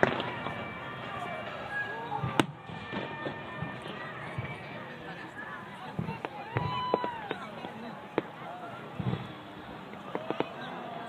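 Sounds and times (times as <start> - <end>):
firework bang: 0.0 - 0.8, 2.2 - 4.6, 9.0 - 10.7
fireworks thudding: 0.0 - 1.6, 2.2 - 5.0, 5.8 - 10.8.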